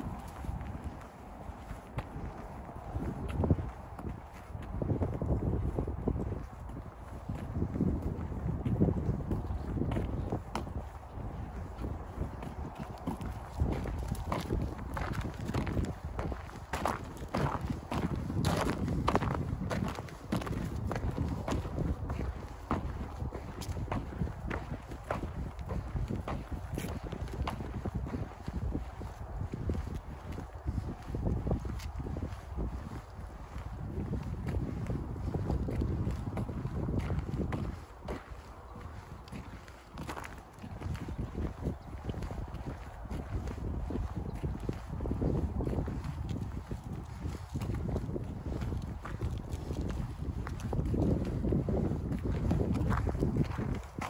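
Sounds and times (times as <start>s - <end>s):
footsteps in slush: 0.0s - 44.2s, 46.0s - 54.0s
wind rumble on microphone: 0.0s - 54.0s.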